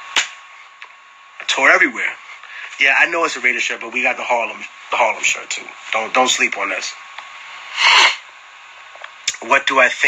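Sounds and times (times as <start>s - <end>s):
low room noise: 0.0s - 10.0s
man's sharp breathy burst: 7.7s - 8.2s.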